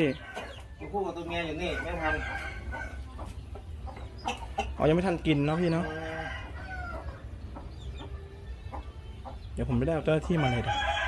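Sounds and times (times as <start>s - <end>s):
rooster clucking: 1.4s - 11.0s
man talking: 9.6s - 10.9s.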